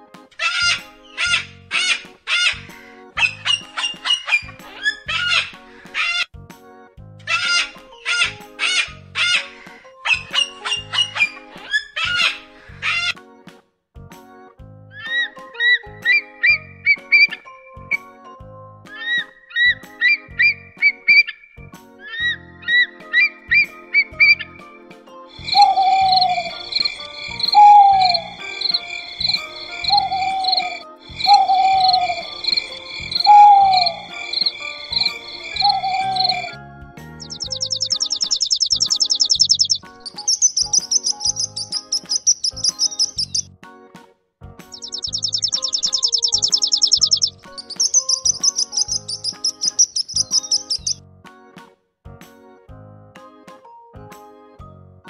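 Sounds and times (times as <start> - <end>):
cheerful children's music: 0.0 - 55.0
sparrow chirping: 0.4 - 6.2, 7.3 - 13.1, 25.4 - 43.5, 44.7 - 51.0
eagle cry chirps and whistles: 3.2 - 6.2, 7.3 - 13.1, 25.4 - 43.5, 44.7 - 51.0.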